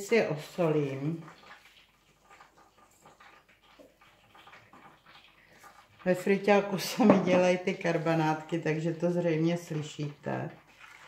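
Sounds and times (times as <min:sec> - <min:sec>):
meat crackling in deep fryer: 0:00.0 - 0:06.9.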